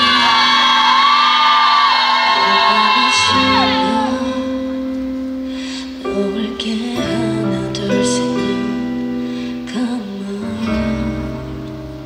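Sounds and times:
woman singing pop ballad: 2.3 - 4.9, 5.6 - 11.4.

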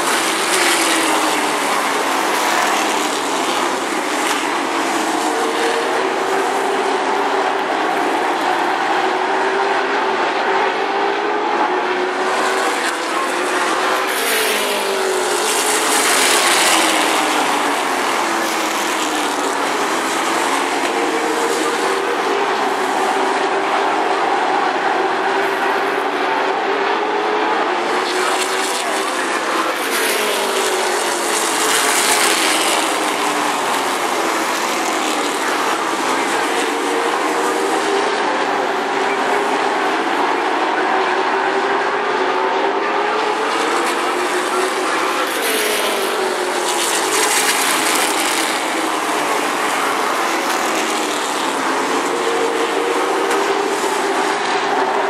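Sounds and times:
racing car engines: 0.0 - 55.0.

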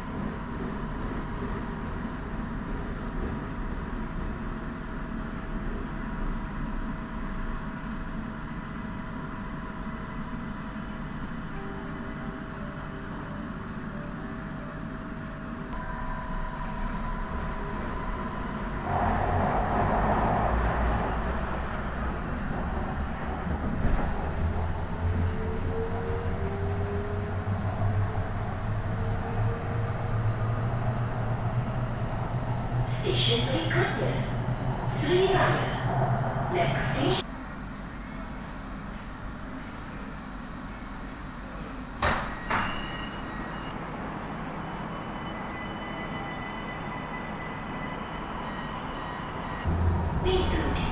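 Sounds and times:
train interior hum: 0.0 - 50.9
train low rumble: 0.0 - 50.9.

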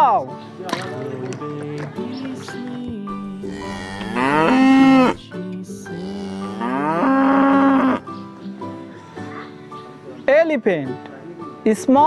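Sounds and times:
cattle mooing: 3.4 - 5.2, 5.9 - 8.0.

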